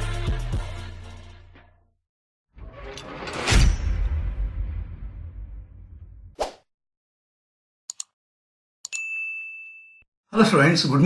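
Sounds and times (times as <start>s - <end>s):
quick clicks: 7.9s - 8.2s
bright ringing ding: 8.9s - 10.0s.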